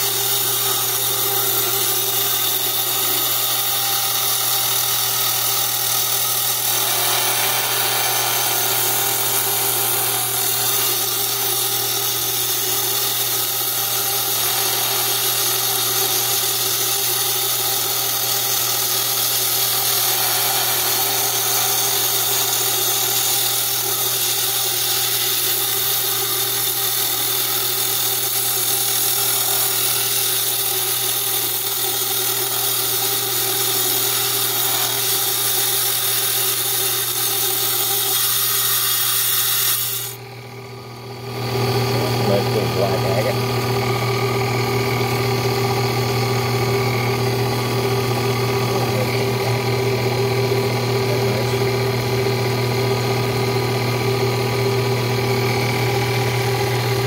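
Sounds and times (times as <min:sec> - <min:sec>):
stone saw humming and grinding: 0:00.0 - 0:57.0.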